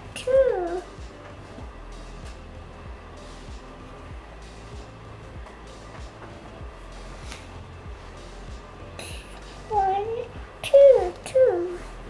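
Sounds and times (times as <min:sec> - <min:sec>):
child's high-pitched vocal sound: 0:00.2 - 0:00.8, 0:09.7 - 0:11.9.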